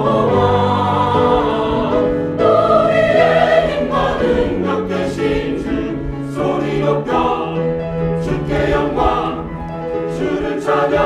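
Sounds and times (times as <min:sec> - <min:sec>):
mixed choir singing an anthem: 0:00.0 - 0:11.0.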